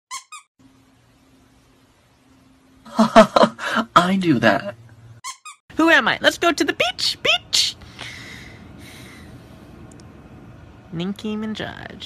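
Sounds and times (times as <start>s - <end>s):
high-pitched squeaks: 0.1s - 0.5s, 5.2s - 5.6s.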